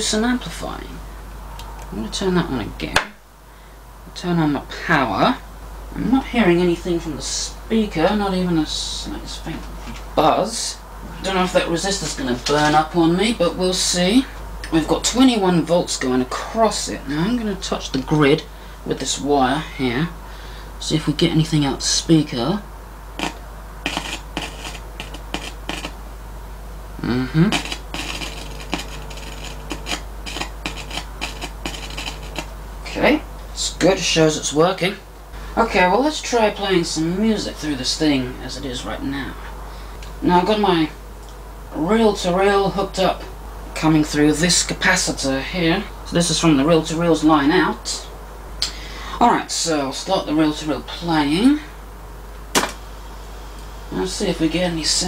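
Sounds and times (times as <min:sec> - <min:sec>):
low hum: 0:22.5 - 0:35.6
loudspeaker crackles and pops: 0:23.2 - 0:26.0, 0:27.5 - 0:32.6, 0:52.5 - 0:52.8.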